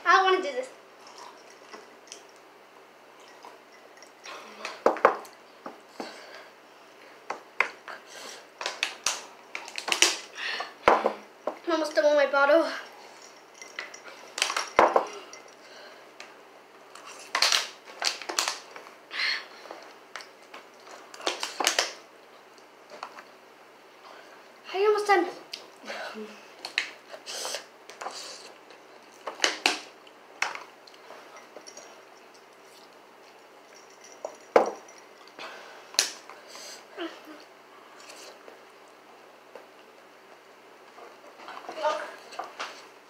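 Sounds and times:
girl's voice: 0.0 - 0.8, 11.1 - 12.9, 24.7 - 26.4, 41.7 - 42.2.

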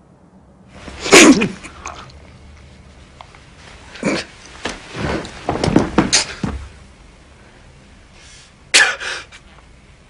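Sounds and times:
person coughing: 1.1 - 1.9, 8.8 - 9.2.

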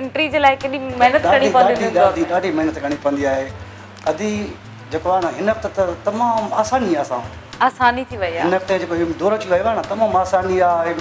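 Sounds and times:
woman talking: 0.0 - 2.3, 7.6 - 8.5.

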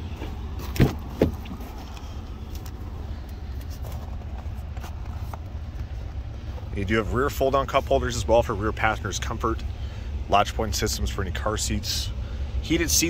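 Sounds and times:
car door clunks: 0.2 - 1.8.

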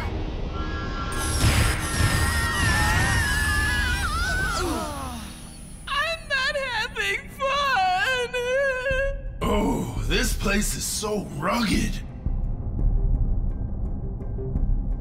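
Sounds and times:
boy cartoon crying: 2.2 - 5.3.

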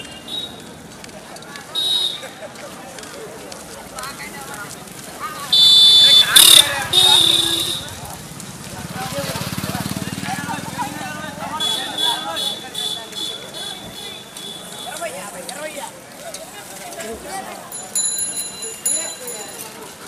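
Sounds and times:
many people talking: 0.0 - 20.0
motorcycle engine passing: 5.2 - 11.6
loud shrill horn: 5.5 - 7.9.

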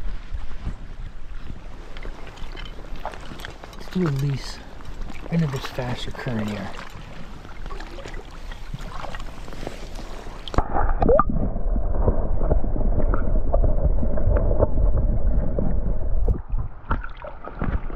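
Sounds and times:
stream water running: 1.1 - 11.3.

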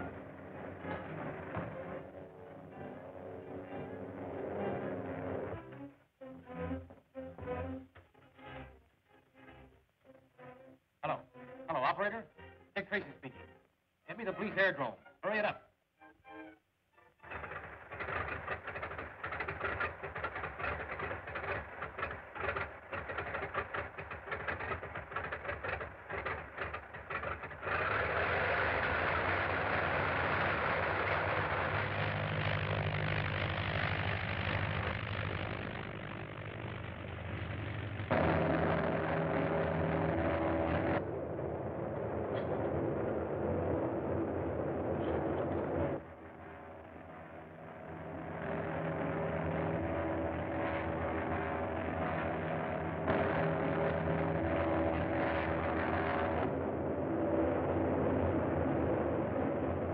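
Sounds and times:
propeller plane engine: 0.0 - 7.2, 17.0 - 59.9.

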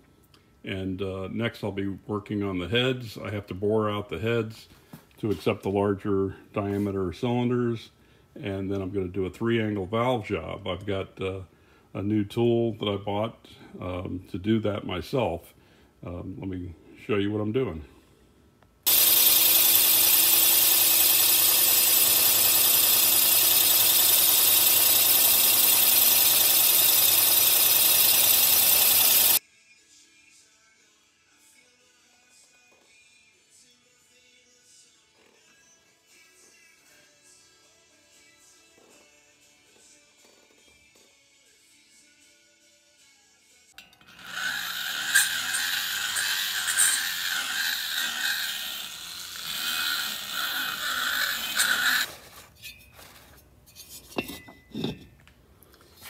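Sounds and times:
die grinder grinding metal: 18.9 - 29.4, 43.8 - 52.1
milling machine cutting metal: 18.9 - 29.4, 44.0 - 52.1.

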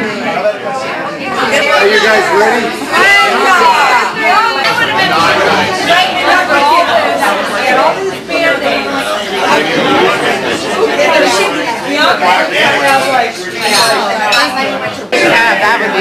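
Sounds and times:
babble of overlapping voices: 0.0 - 16.0.

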